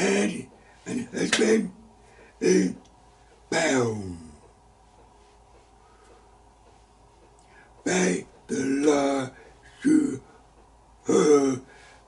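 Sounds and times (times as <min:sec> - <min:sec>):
man mumbling or throat clearing: 0:11.1 - 0:11.7.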